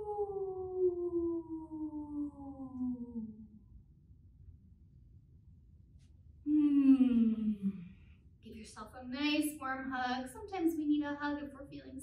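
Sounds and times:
woman imitating wolf howl: 0:00.0 - 0:03.6.

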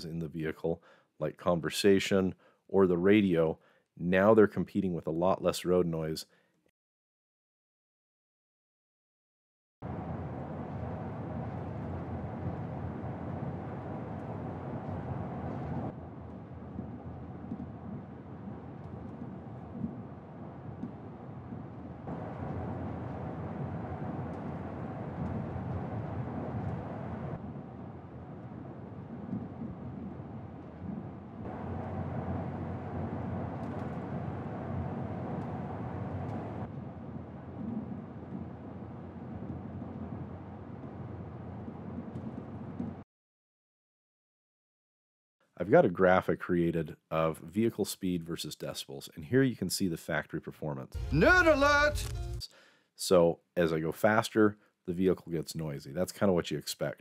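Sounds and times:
tyre and road noise in cab: 0:22.1 - 0:27.4, 0:30.9 - 0:38.5.

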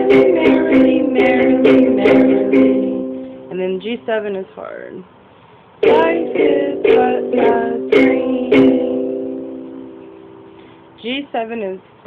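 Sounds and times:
ukulele strumming: 0:00.0 - 0:03.5, 0:05.8 - 0:10.9.

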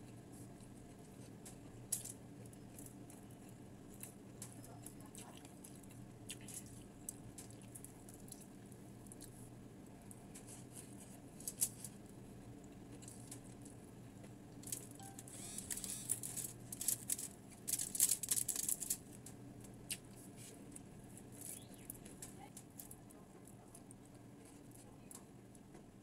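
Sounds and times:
fried fish crackling on foil: 0:14.6 - 0:19.3.

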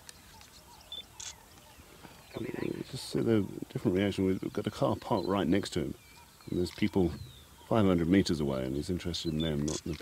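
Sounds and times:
scattered clicks: 0:09.5 - 0:10.0.

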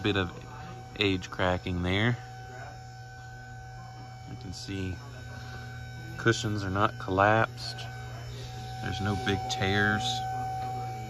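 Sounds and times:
faint high tones: 0:00.0 - 0:11.0
low hum: 0:00.0 - 0:11.0.

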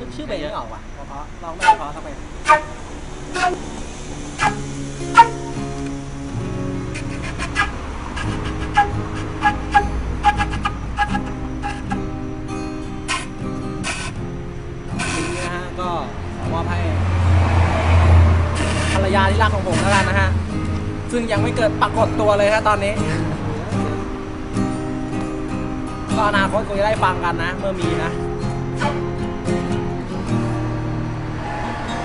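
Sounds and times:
vehicle engine hum passing: 0:00.0 - 0:32.0
flute notes: 0:01.5 - 0:16.1, 0:17.8 - 0:20.6, 0:28.5 - 0:29.6, 0:30.3 - 0:32.0.

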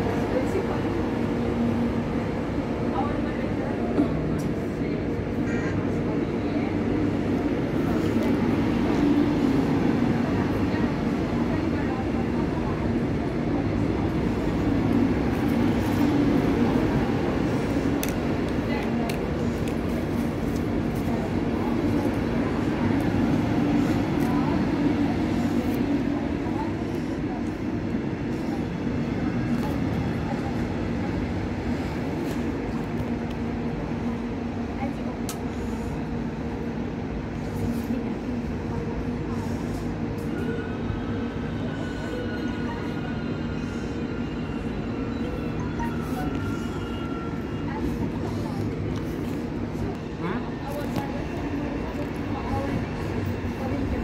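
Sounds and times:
train rolling past: 0:00.0 - 0:54.0.

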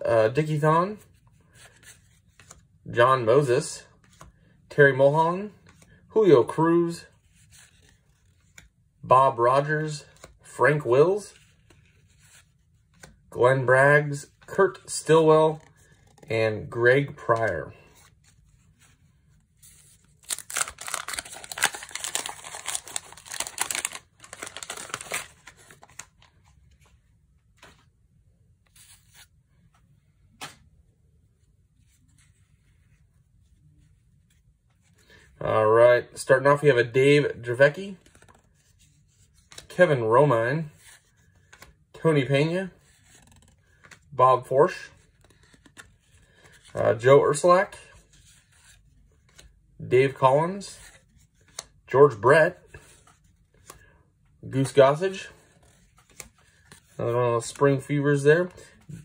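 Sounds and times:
cardboard cards rustling: 0:04.0 - 0:30.8, 0:37.2 - 0:39.8, 0:40.5 - 0:59.0
wax paper wrapper tearing: 0:20.2 - 0:25.3.

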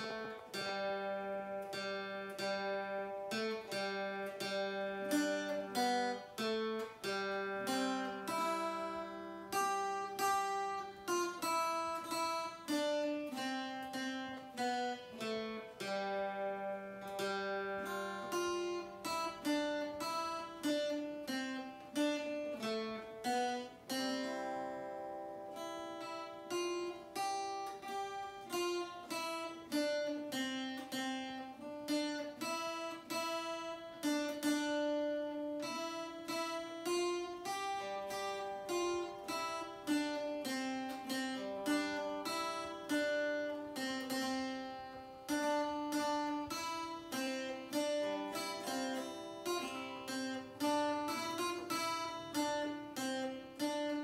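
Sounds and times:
two guitars playing: 0:00.0 - 0:54.0.

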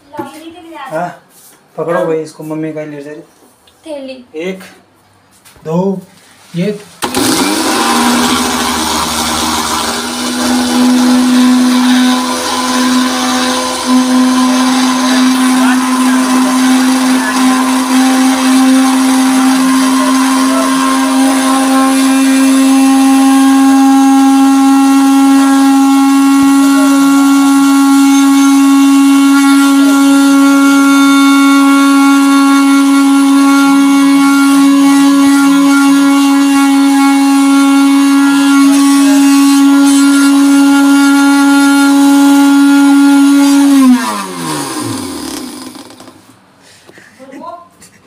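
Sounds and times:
mixer grinder motor whining: 0:07.0 - 0:46.4.

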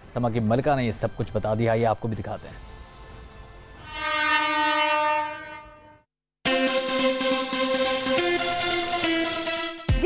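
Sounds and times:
train horn blast: 0:03.8 - 0:06.0.

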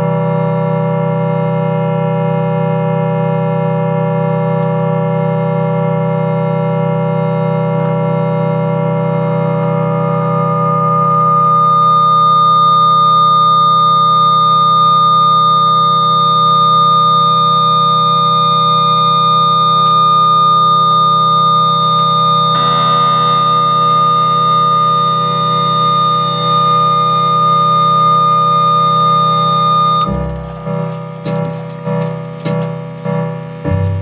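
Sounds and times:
electric organ drone: 0:00.0 - 0:34.0.

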